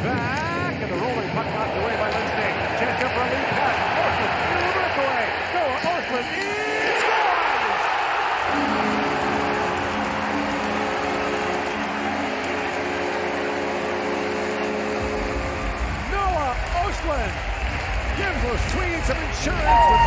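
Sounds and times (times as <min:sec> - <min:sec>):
arena crowd cheering: 0:01.0 - 0:20.0
goal horn low tones: 0:08.5 - 0:16.0, 0:19.6 - 0:20.0.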